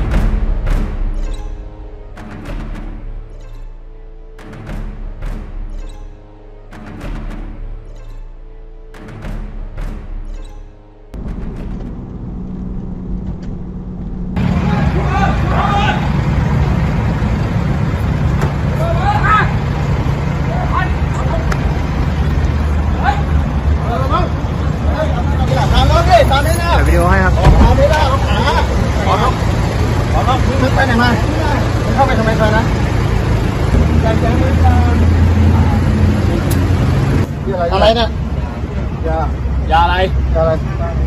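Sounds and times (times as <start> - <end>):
car engines running: 11.1 - 41.0
men calling out: 22.8 - 29.5.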